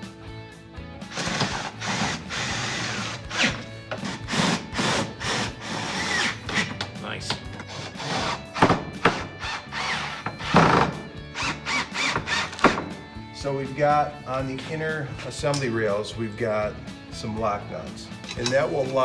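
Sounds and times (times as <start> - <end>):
background music: 0.0 - 19.0
cordless drill driving screws: 1.1 - 6.7, 9.1 - 12.8.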